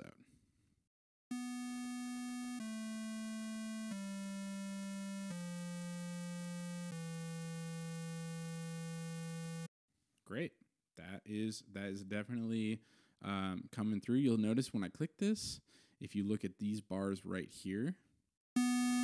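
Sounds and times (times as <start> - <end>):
synthesizer square-wave notes: 1.3 - 9.7, 18.6 - 19.0.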